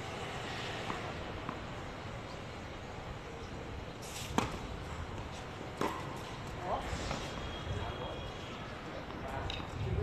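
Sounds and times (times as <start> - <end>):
tennis racket hitting ball: 5.8 - 6.1.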